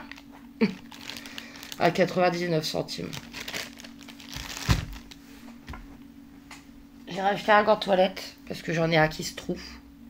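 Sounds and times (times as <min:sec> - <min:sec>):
plastic packaging crinkling: 0:00.0 - 0:05.3.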